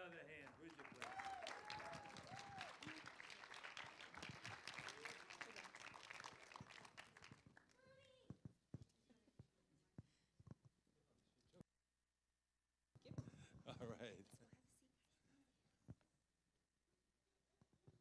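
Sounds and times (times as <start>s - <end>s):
audience applauding: 0.0s - 7.8s.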